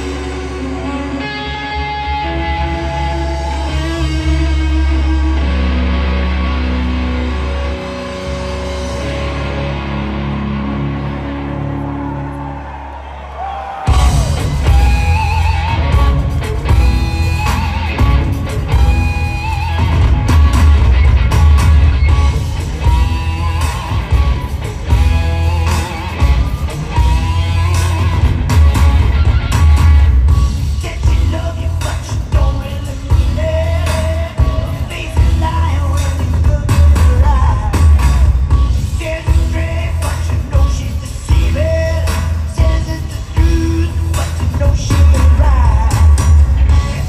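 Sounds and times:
drums: 0.0 - 47.0
electric guitar: 0.0 - 47.0
live rock band playing: 0.0 - 47.0.

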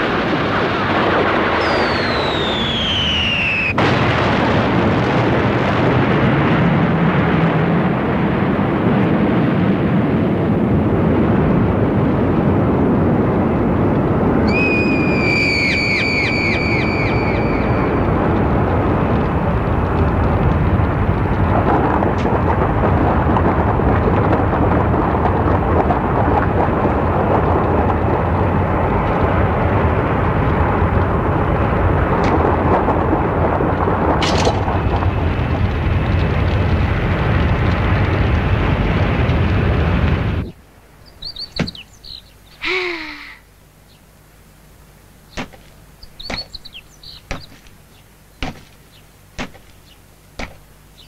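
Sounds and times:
explosion rumbling roar: 0.0 - 40.6
high warbling tone: 14.5 - 18.2.

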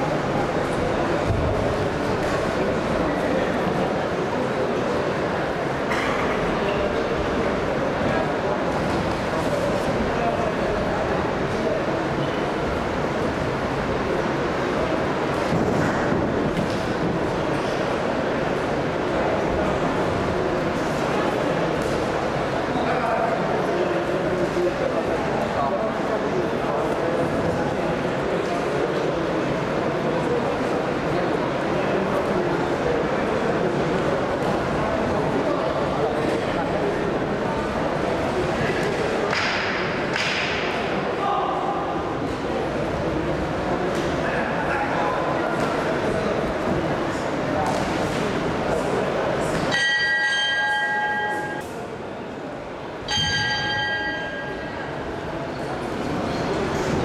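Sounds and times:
boxing bell ringing: 49.7 - 51.7, 53.1 - 54.9.

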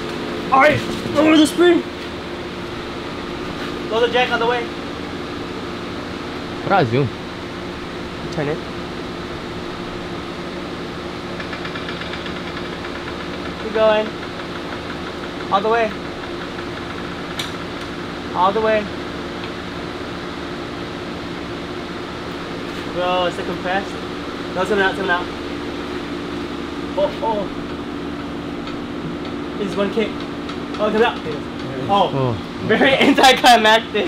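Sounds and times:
steady machine hum: 0.0 - 34.0.

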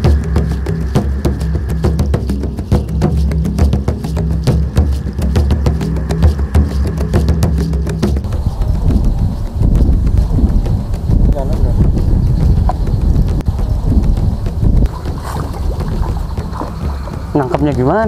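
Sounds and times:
background music with percussion: 0.0 - 18.0
wind buffeting microphone: 0.0 - 18.0.

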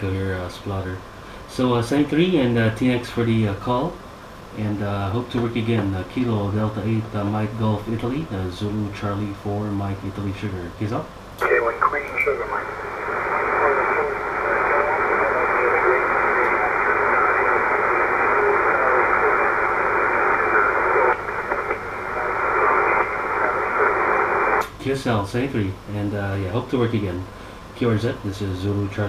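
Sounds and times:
weak garbled radio voice: 11.4 - 24.6
radio hiss: 11.4 - 25.8.

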